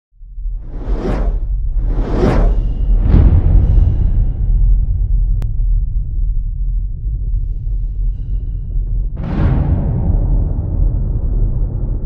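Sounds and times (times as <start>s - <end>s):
deep low rumble: 0.2s - 12.0s
whoosh sound effects: 0.6s - 3.8s.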